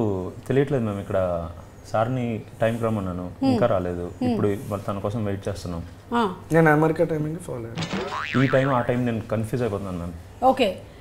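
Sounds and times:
men talking: 0:00.0 - 0:06.0, 0:06.6 - 0:10.2
comic boing spring effect: 0:07.8 - 0:09.2.

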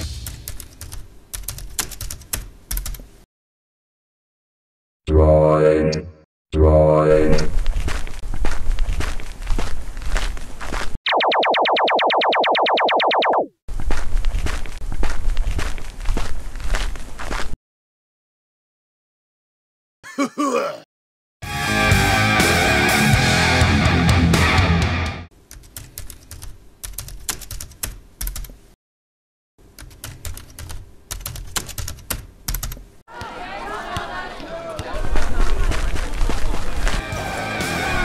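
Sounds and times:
computer keyboard typing: 0:00.5 - 0:03.0, 0:25.5 - 0:28.6, 0:29.8 - 0:32.8.

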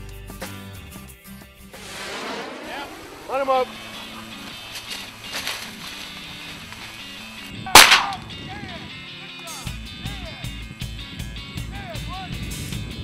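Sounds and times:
background music: 0:00.0 - 0:13.0
shotgun blast: 0:01.8 - 0:04.7, 0:07.7 - 0:08.2.

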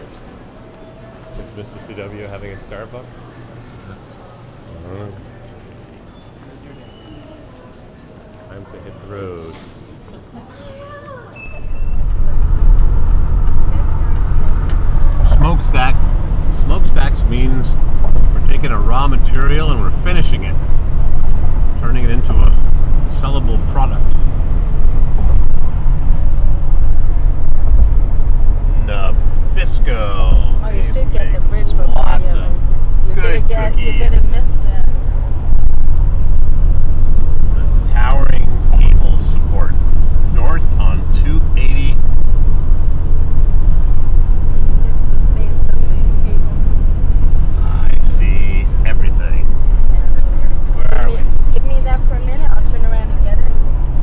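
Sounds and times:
road and engine rumble in car: 0:08.5 - 0:54.0.

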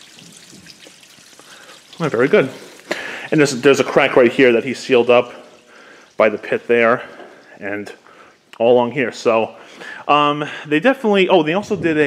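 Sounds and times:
water trickling in drain pipe: 0:00.0 - 0:09.6.

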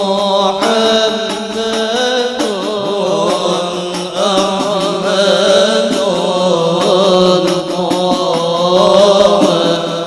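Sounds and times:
voices chanting devotional chant: 0:00.0 - 0:10.0.

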